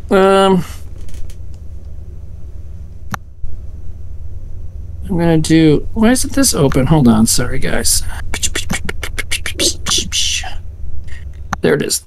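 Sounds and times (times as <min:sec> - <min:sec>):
microphone hum and hiss: 0:00.0 - 0:12.0.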